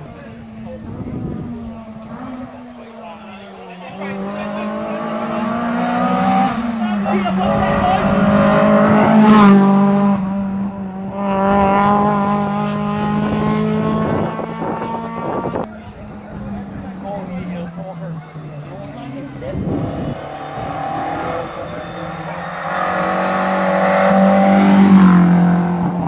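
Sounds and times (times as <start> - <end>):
rally car engine passing: 0.0 - 26.0.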